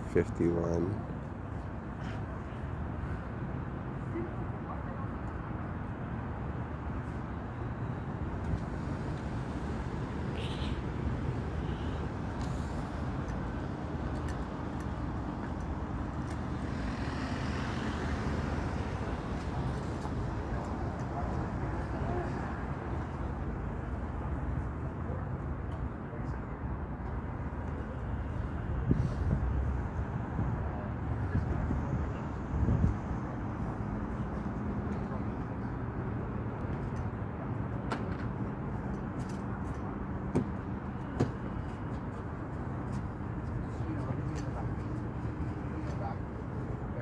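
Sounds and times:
city street traffic: 0.0 - 47.0.

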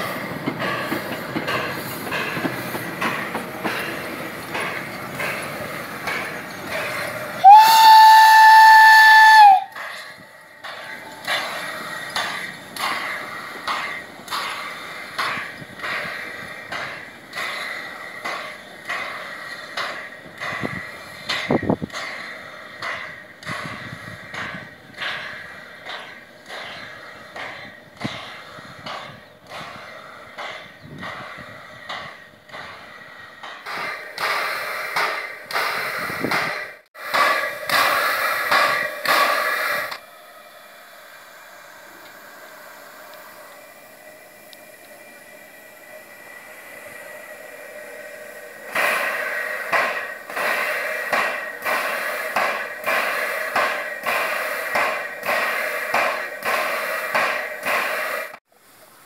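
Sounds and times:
steam hissing: 0.0 - 59.0
steam locomotive chuffing: 0.0 - 59.0.

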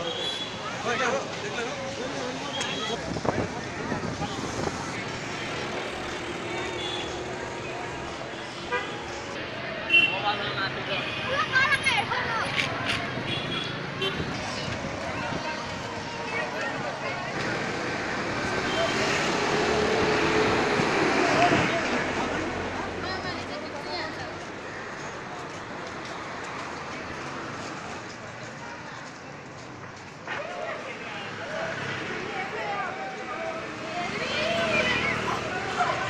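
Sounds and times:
crowd voices: 0.0 - 36.0
motorbikes and scooters passing: 0.8 - 9.6, 10.4 - 24.6, 30.9 - 36.0
wind noise: 3.0 - 5.0.

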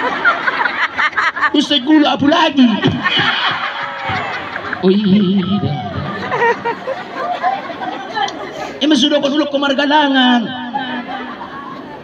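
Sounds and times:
people chattering: 0.0 - 12.0
loud voice: 4.8 - 6.4.

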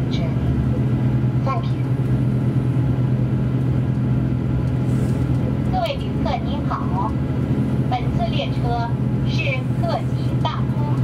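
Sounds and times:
diesel engine hum: 0.0 - 11.0
train running rumble: 0.0 - 11.0.

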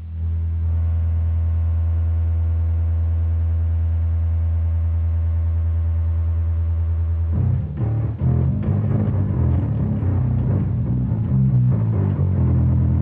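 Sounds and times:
electric bass low note: 0.0 - 13.0.

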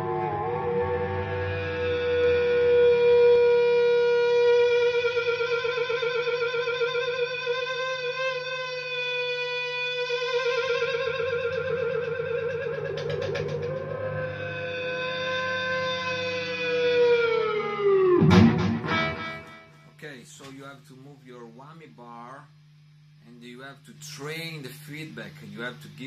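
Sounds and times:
electric guitar feedback: 0.0 - 20.0.

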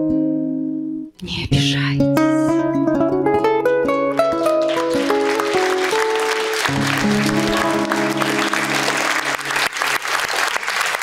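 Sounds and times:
acoustic guitars playing: 0.0 - 9.9
audience applause: 4.2 - 11.0.

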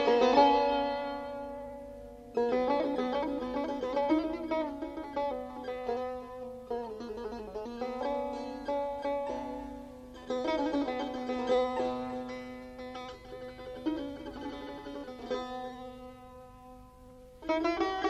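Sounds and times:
plucked lute: 0.0 - 18.0.

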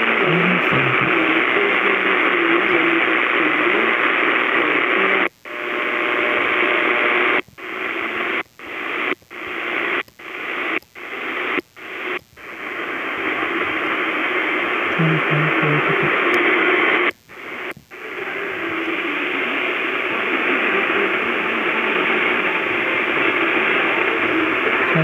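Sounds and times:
radio static hiss: 0.0 - 25.0.

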